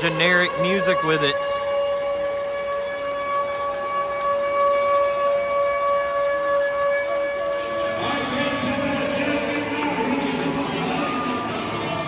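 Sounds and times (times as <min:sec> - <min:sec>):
long horn-like tone: 0:00.0 - 0:12.0.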